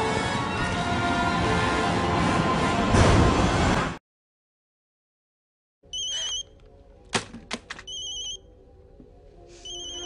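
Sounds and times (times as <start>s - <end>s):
mobile phone ringing: 5.9s - 6.5s, 7.9s - 8.4s, 9.6s - 10.0s.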